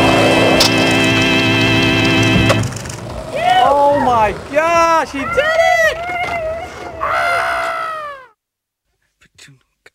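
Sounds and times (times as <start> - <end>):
high-pitched excited scream: 3.3 - 4.2, 5.0 - 8.4.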